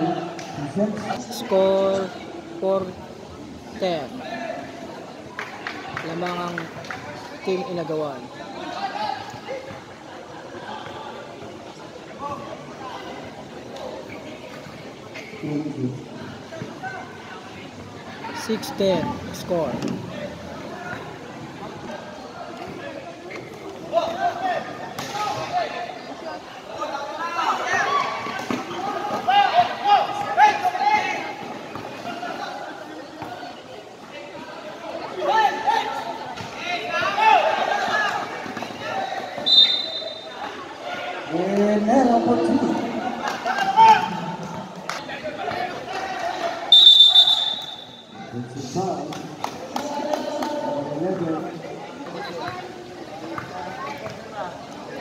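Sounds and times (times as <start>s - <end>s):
voices shouting and calling: 20.1s - 41.4s, 42.0s - 48.5s
referee whistle blasts: 39.4s - 40.4s, 46.7s - 48.2s.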